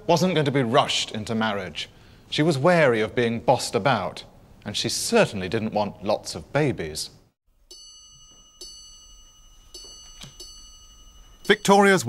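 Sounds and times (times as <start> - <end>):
faint high ringing tones: 7.5 - 12.0.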